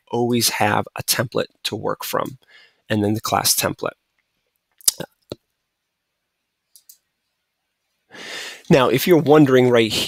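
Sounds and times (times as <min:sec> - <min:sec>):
computer mouse clicks: 0:06.7 - 0:07.1.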